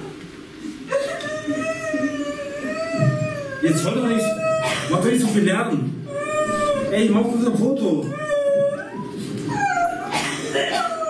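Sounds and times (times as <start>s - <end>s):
high wailing cry: 0.9s - 4.9s, 6.1s - 7.1s, 8.0s - 11.0s.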